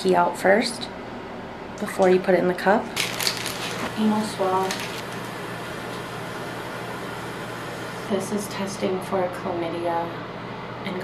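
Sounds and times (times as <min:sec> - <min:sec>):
woman's voice: 0:00.0 - 0:01.0, 0:01.8 - 0:03.0, 0:03.9 - 0:05.0, 0:08.1 - 0:11.0
ventilation fan hiss and hum: 0:00.0 - 0:11.0.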